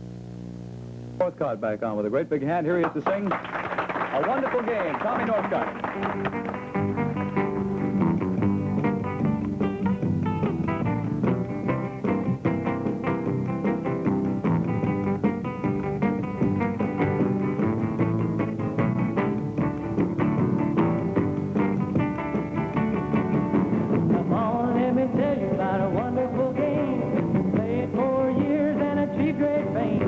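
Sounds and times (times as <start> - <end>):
electric guitar picking: 5.6 - 30.0.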